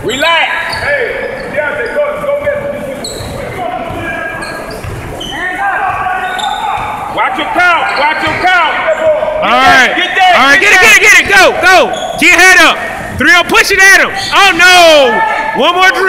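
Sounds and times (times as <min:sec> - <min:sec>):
sneaker squeaks: 0:00.0 - 0:09.4, 0:10.9 - 0:14.6
basketball bouncing: 0:02.4 - 0:08.8.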